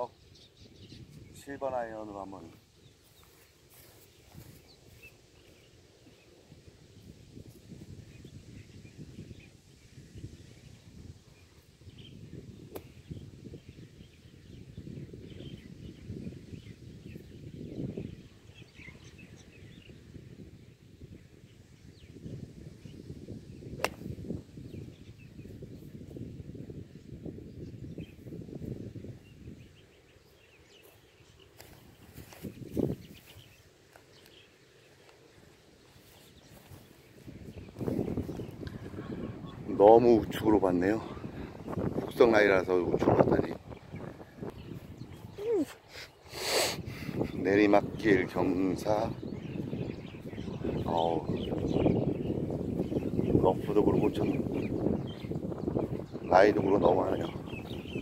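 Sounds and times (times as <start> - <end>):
wind rumbling on microphone: 0.0 - 58.0
golf club striking ball: 23.8 - 24.2
faint bird chirps: 43.0 - 58.0.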